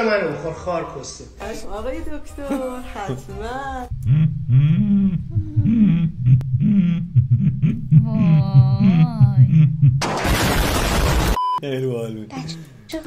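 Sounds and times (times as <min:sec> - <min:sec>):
person's voice with gliding pitch: 0:03.0 - 0:07.1, 0:08.0 - 0:09.6
loud explosion sound effect: 0:10.0 - 0:11.4.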